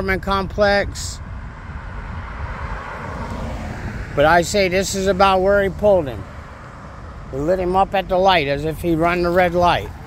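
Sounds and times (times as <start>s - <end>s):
car tyres on asphalt: 0.0s - 10.0s.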